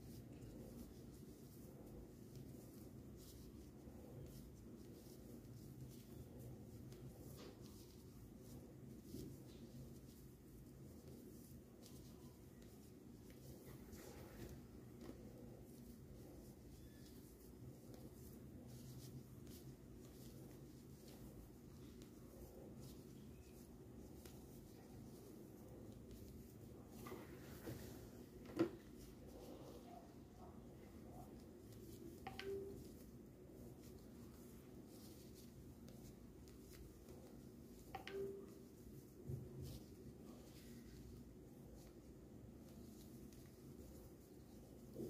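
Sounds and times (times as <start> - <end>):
crochet hook ticks and rustles: 0.0 - 27.8, 28.8 - 45.0
low steady hum: 0.0 - 45.0.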